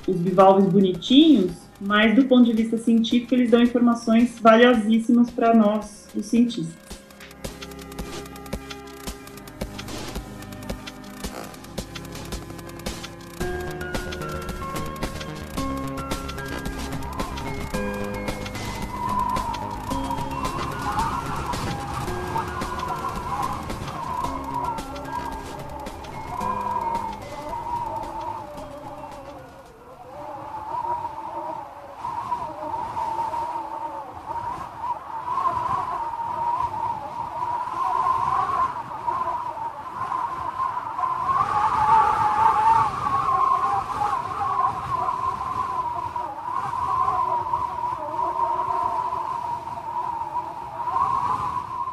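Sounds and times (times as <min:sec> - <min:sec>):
sustained wavering tone: 0:00.0 - 0:31.8
faint steady tones: 0:00.0 - 0:41.4.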